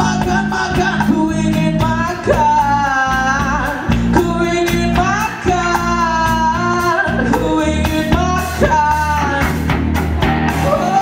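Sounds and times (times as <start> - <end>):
drum kit beat: 0.0 - 11.0
electric bass: 0.0 - 11.0.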